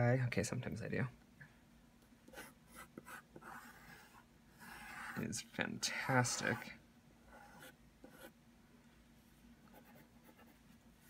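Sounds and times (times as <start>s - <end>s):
colored pencil scratching paper: 2.3s - 5.3s, 7.3s - 8.4s, 9.7s - 10.8s.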